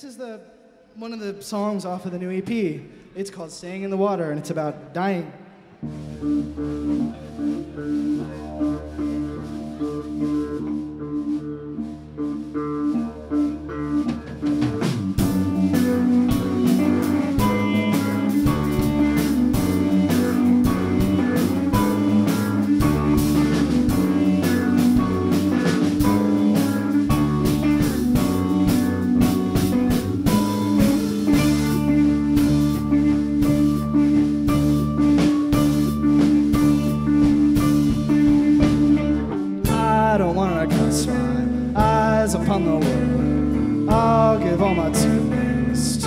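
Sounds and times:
electric guitars: 0:05.7 - 0:46.0
drums: 0:05.8 - 0:46.0.

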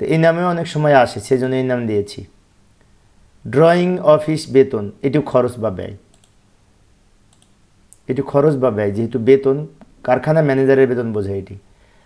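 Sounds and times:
computer mouse clicks: 0:06.1 - 0:06.4, 0:07.3 - 0:08.1.

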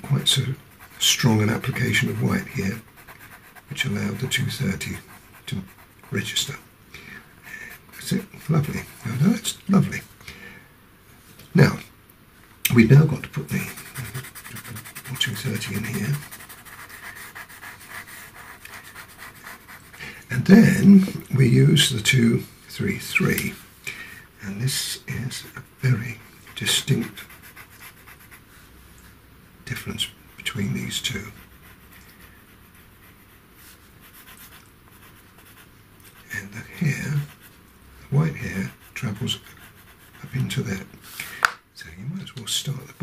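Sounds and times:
pastel pencil scratching paper: 0:00.7 - 0:06.5, 0:13.5 - 0:20.0, 0:26.2 - 0:28.4, 0:30.9 - 0:37.6, 0:38.3 - 0:40.6
man murmuring: 0:20.4 - 0:21.3.

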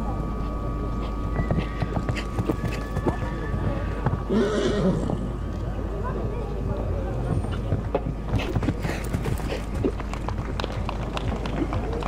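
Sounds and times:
horse hoofbeats on sand: 0:01.0 - 0:04.2, 0:07.4 - 0:12.0.

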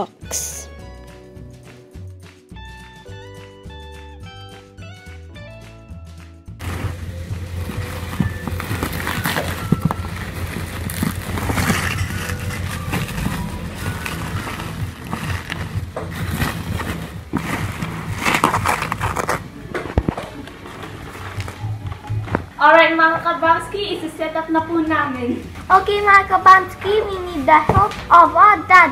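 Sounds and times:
background music: 0:00.0 - 0:28.9
bubble wrap crinkling: 0:06.6 - 0:22.6.

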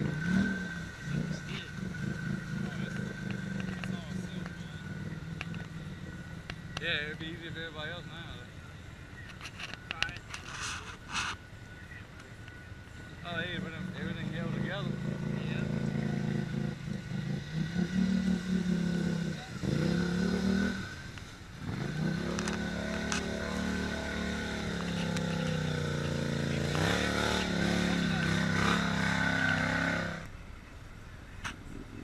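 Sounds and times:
atv engine revving: 0:00.0 - 0:30.4.

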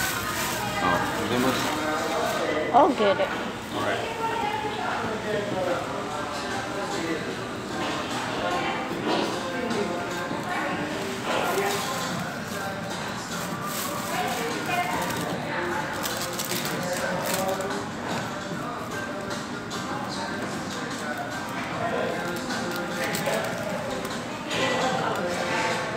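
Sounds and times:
background chatter: 0:00.0 - 0:25.9
background music: 0:06.3 - 0:25.9.

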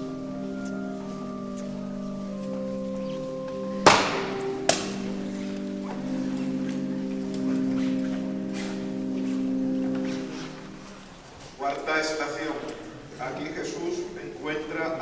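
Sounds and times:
slow music of held chords: 0:00.0 - 0:11.6
loud sharp knocks: 0:03.8 - 0:05.0.

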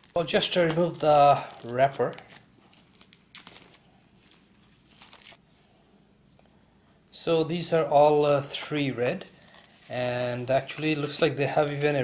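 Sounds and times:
plastic wrapper crinkling and tearing: 0:00.0 - 0:05.4, 0:09.4 - 0:12.0.

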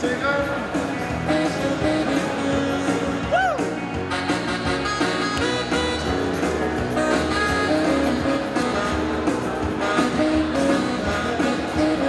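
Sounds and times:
electronic keyboard music: 0:00.0 - 0:12.0
steady bass line: 0:00.0 - 0:12.0.

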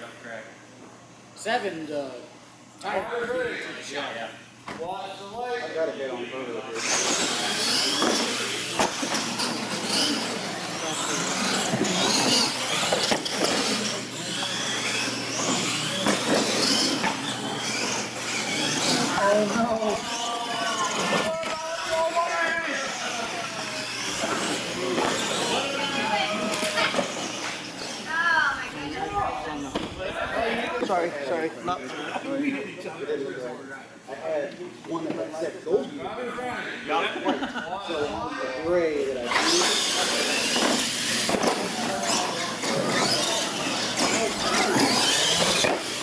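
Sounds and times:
people talking: 0:01.4 - 0:46.0
toy truck motors and tyres: 0:06.8 - 0:28.2, 0:39.2 - 0:46.0.

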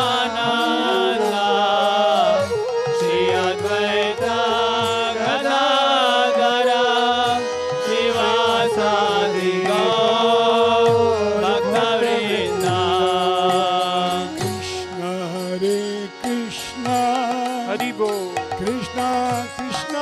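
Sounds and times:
group chanting: 0:00.0 - 0:02.4, 0:03.0 - 0:13.5
harmonium chords: 0:00.0 - 0:20.0.

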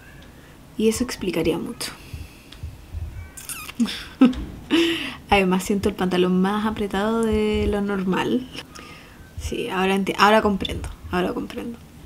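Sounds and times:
woman laughing breathily: 0:03.8 - 0:05.3.

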